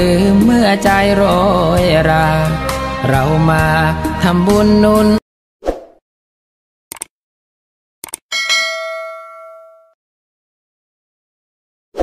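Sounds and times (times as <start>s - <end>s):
notification bell ding: 8.3s - 10.0s.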